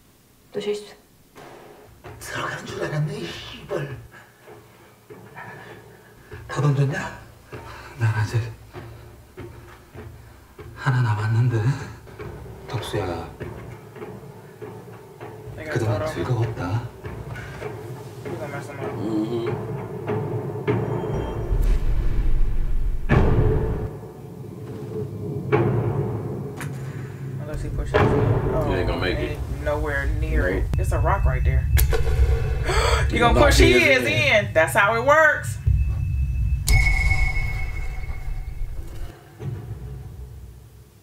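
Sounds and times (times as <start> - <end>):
dramatic tv score: 0.5 - 40.8
deep rumble: 21.1 - 23.9, 27.5 - 34.4, 35.6 - 39.1
heavy low booming hits: 21.3 - 23.9, 27.5 - 33.7
sharp bright ping: 35.8 - 39.1.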